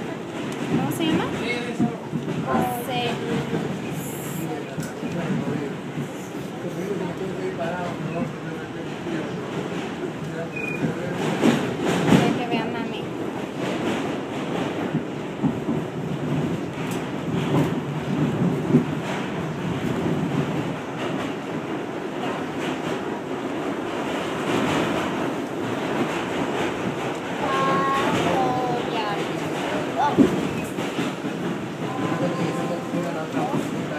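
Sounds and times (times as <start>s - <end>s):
subway train rumbling: 0.0s - 33.9s.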